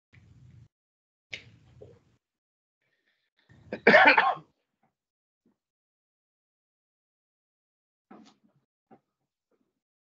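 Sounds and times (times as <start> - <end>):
loud cough: 3.7 - 4.5.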